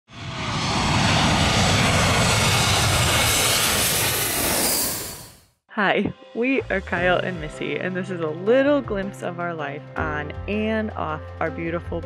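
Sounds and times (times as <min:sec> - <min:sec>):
jet airliner passing overhead: 0:00.1 - 0:05.4.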